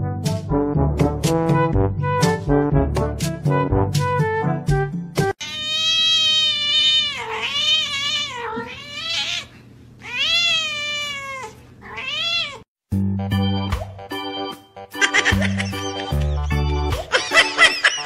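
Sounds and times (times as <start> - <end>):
music: 0.0 - 5.4, 12.9 - 18.0
cat meowing loudly: 5.4 - 12.6.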